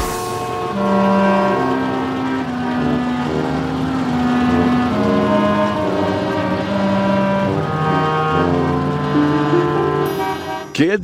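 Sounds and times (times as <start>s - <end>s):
car horns honking: 0.0s - 11.0s.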